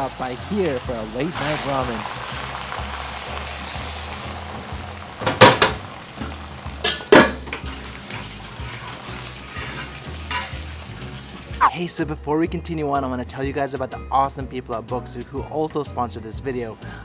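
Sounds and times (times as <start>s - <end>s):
egg sizzling in a pan: 0.0s - 11.7s
iron lid clanking: 4.6s - 7.7s.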